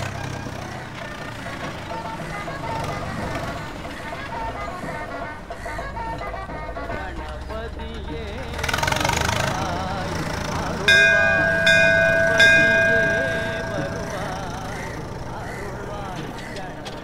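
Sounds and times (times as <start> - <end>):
low vehicle rumble: 0.0 - 17.0
metal temple bell ringing: 10.8 - 15.3.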